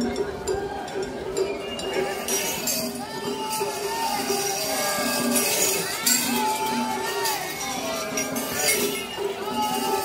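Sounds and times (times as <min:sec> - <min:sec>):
crowd voices: 0:00.0 - 0:10.0
festival float music: 0:00.0 - 0:10.0
bright metallic jingling: 0:00.9 - 0:10.0.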